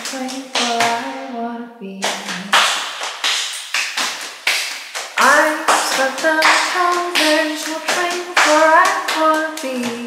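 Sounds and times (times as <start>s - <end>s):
rhythmic handclaps: 0.0s - 1.1s, 2.0s - 10.0s
person singing a cappella: 0.0s - 2.6s, 5.2s - 10.0s.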